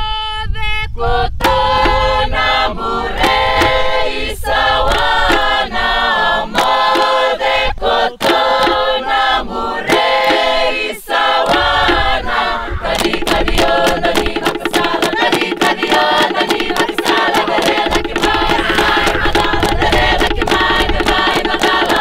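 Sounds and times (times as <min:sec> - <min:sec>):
chorus of voices chanting: 0:01.0 - 0:22.0
sharp percussive strikes: 0:01.4 - 0:07.5, 0:08.2 - 0:09.3, 0:09.9 - 0:22.0
fast even pulse: 0:08.2 - 0:09.1, 0:11.4 - 0:22.0.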